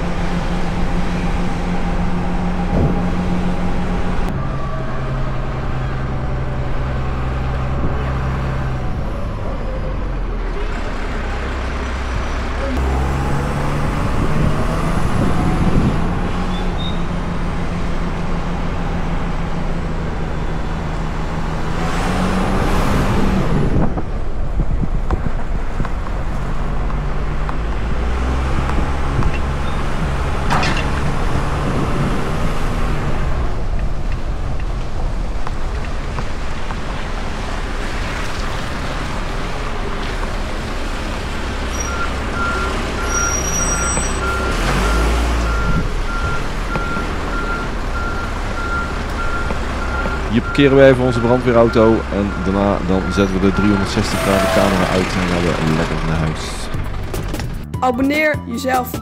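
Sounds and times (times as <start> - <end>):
diesel truck engine running: 0.0 - 59.0.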